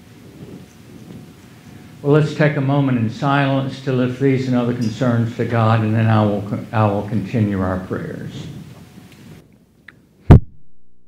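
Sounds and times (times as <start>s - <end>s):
low room rumble: 0.0s - 10.5s.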